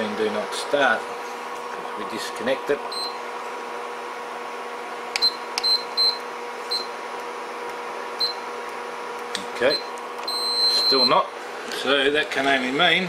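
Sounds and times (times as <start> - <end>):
steady electrical hum: 0.0 - 13.0.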